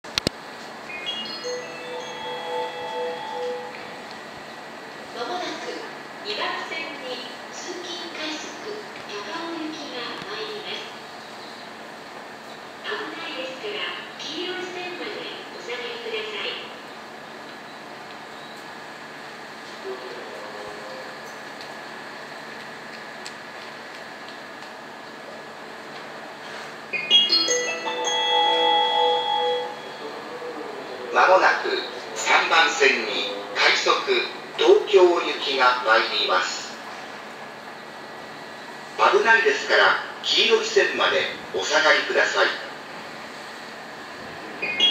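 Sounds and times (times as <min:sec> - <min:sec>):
station platform chime: 0:00.9 - 0:04.1, 0:27.0 - 0:30.2, 0:44.7 - 0:44.9.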